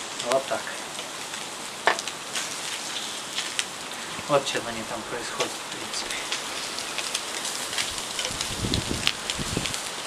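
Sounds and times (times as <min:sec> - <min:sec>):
fish sizzling on charcoal grill: 0:00.0 - 0:10.0.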